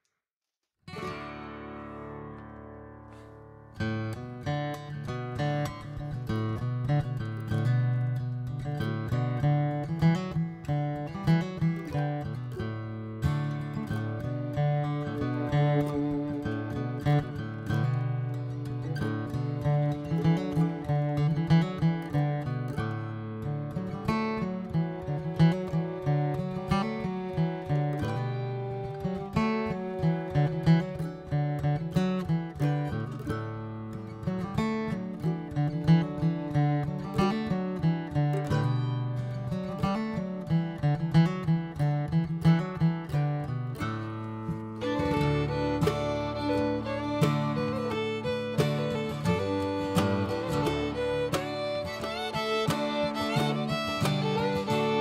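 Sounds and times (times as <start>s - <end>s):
plucked acoustic guitar: 0.9s - 55.0s.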